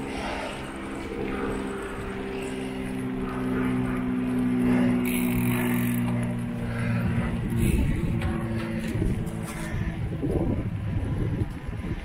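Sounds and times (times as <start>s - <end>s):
steady low hum: 0.0s - 12.0s
wind rumble on microphone: 0.0s - 12.0s.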